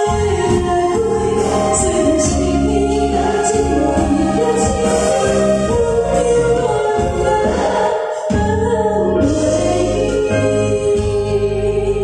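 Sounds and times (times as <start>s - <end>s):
loud amplified music: 0.0s - 12.0s
woman singing into microphone: 0.0s - 12.0s.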